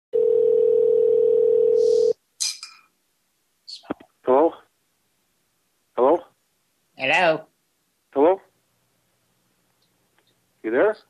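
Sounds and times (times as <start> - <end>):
steady low telephone line tone: 0.2 - 2.1.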